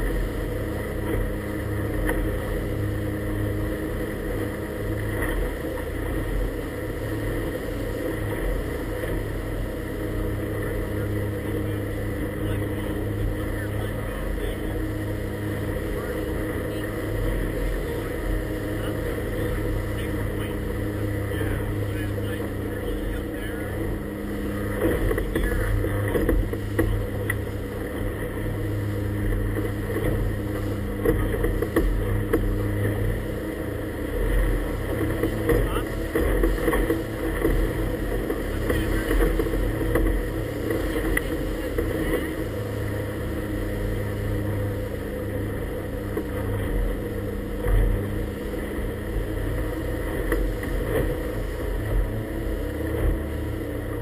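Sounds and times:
motorboat engine running: 0.0 - 54.0
water splashing against hull: 0.0 - 54.0
waves slapping boat: 0.0 - 54.0.

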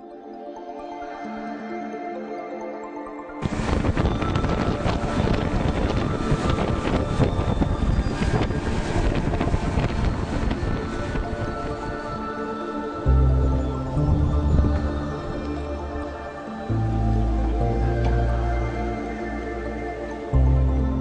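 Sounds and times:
faint music: 0.0 - 21.0
wind rushing over microphone: 3.4 - 21.0.

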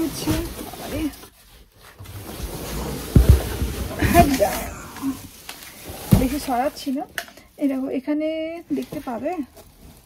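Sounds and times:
cardboard carton scraping and rustling: 0.0 - 7.0.

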